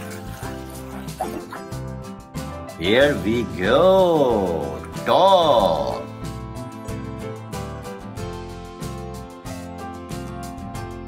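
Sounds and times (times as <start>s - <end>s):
background music: 0.0s - 11.0s
dog barking and yipping: 0.4s - 1.9s.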